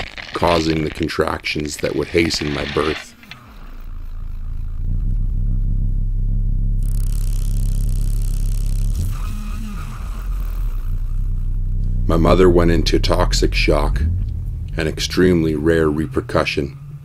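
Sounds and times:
low rumbling drone: 1.6 - 17.0
faint wavering tones: 3.2 - 17.0.

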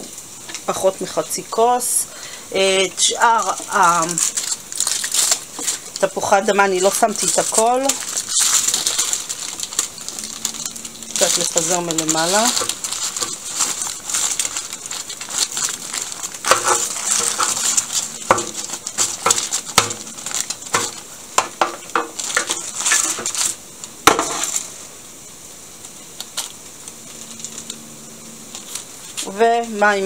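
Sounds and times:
crinkling of paper and foil: 0.5 - 25.0, 25.6 - 30.0.

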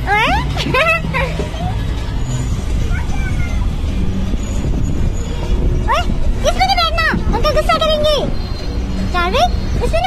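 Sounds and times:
faint child's voice: 2.8 - 3.8.

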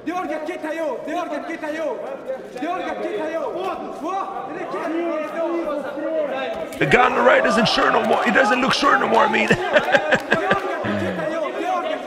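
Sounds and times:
close loud voice: 6.8 - 11.4
men talking and calling out: 6.8 - 11.4.

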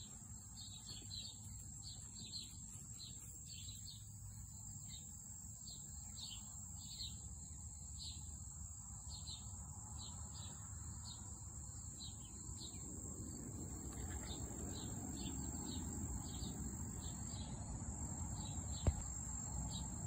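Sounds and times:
cricket trilling: 0.0 - 20.0.

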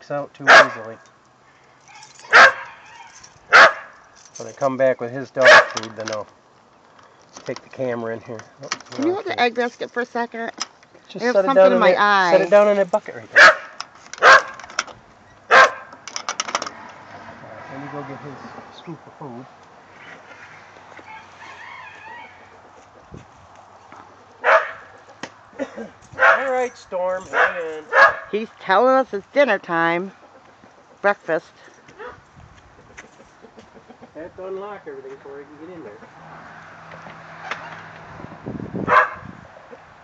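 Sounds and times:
dog barking: 0.5 - 0.9, 2.2 - 4.0, 5.4 - 5.8, 13.4 - 14.6, 15.5 - 15.9, 24.4 - 25.0, 26.2 - 26.6, 27.3 - 28.4, 38.9 - 39.2
handling noise: 5.4 - 17.0, 23.1 - 28.4.

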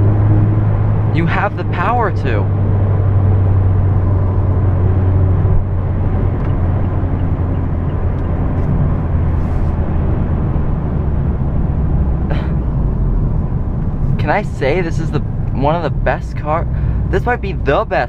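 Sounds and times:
car engine pulling hard: 0.0 - 18.0.

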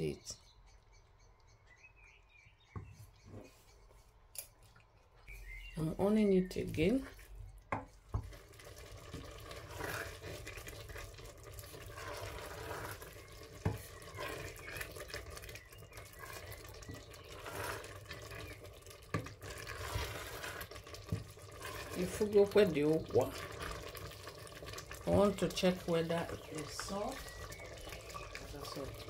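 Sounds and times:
wooden spoon stirring in pot: 2.7 - 29.0.

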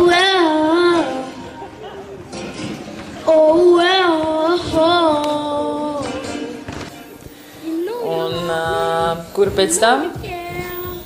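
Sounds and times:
boy singing into a microphone: 0.0 - 1.4, 3.2 - 6.7, 7.6 - 11.0.

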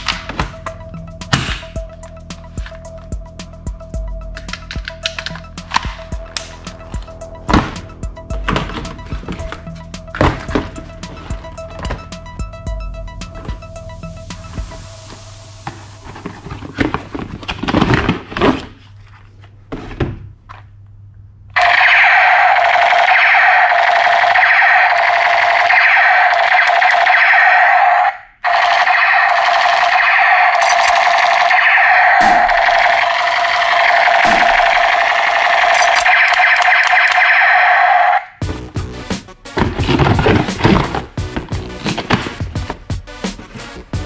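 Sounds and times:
toy gun electronic music: 0.0 - 12.8, 21.6 - 38.2.

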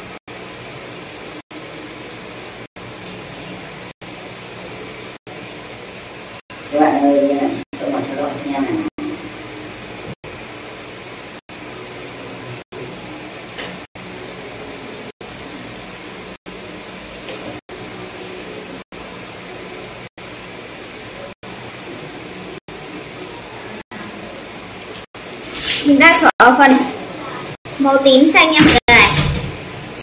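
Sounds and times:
room noise hiss: 0.0 - 30.0.

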